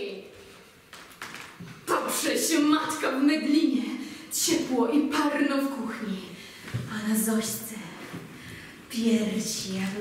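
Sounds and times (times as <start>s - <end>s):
woman speaking: 1.9s - 8.1s, 8.9s - 10.0s.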